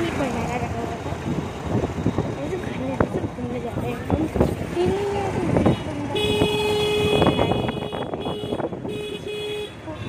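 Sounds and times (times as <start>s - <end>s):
street noise: 0.0s - 10.0s
voices: 0.0s - 10.0s
vehicle horn blast: 6.2s - 9.8s.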